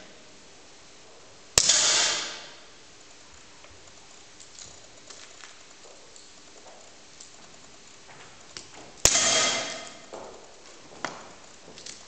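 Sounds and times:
gunshot bang: 0:01.6 - 0:02.6, 0:09.0 - 0:10.0
metallic ringing: 0:09.0 - 0:10.2.

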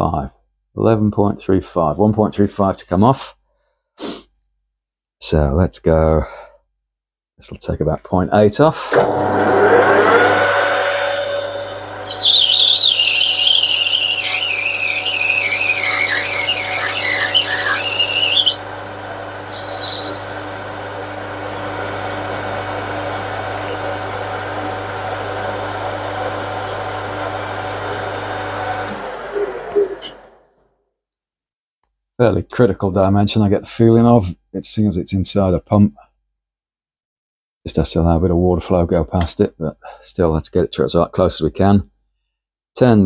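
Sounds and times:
cutting tool squealing: 0:08.9 - 0:18.7, 0:19.5 - 0:20.6
lathe motor humming: 0:08.9 - 0:30.4.

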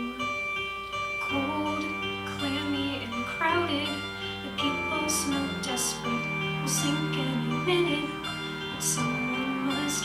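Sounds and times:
recorded accompaniment track: 0:00.0 - 0:10.0
person singing into a microphone: 0:01.2 - 0:10.0.

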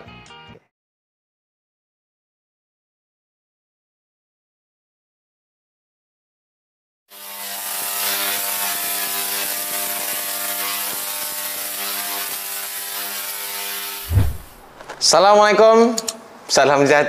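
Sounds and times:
deep boom: 0:14.1 - 0:14.6.

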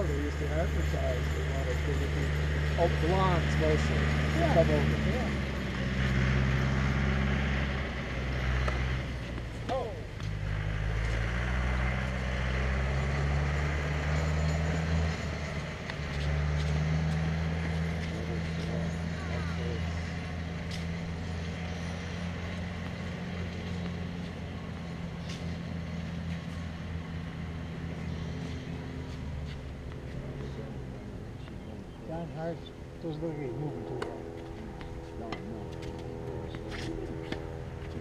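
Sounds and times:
vehicle engine droning: 0:00.0 - 0:38.0.

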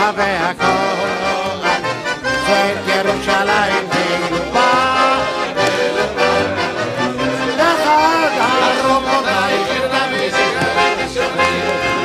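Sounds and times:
accordion playing a tune: 0:00.0 - 0:12.0
man singing: 0:00.0 - 0:12.0.

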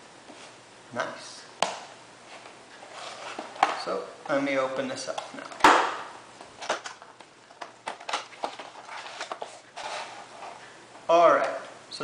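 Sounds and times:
cardboard rustling: 0:02.3 - 0:03.9, 0:06.6 - 0:10.7.

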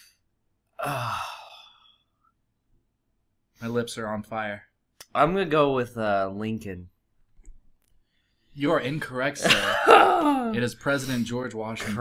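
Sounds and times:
man sighing: 0:00.7 - 0:02.0.

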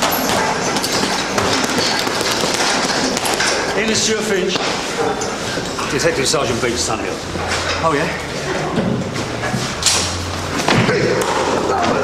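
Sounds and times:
gloves smacking punching bags: 0:00.0 - 0:04.8.

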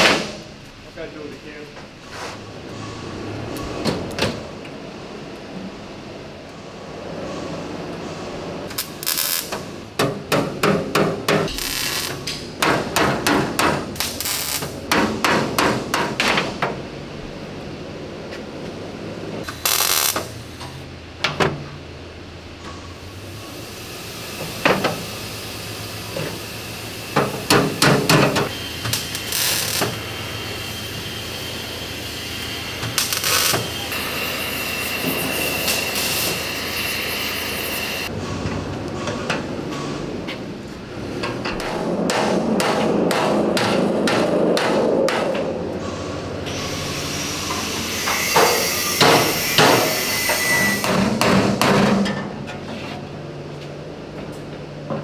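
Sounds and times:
hammer blows on sheet steel: 0:41.5 - 0:45.5.

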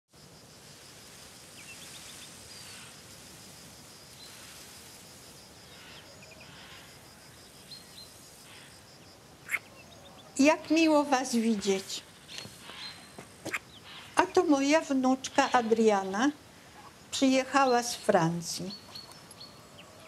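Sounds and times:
faint rural ambience: 0:00.1 - 0:20.0.

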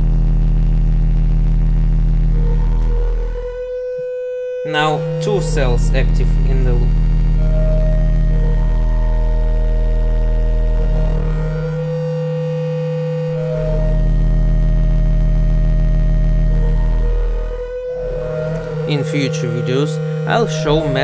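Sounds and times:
synthesizer drone tones: 0:00.0 - 0:21.0.

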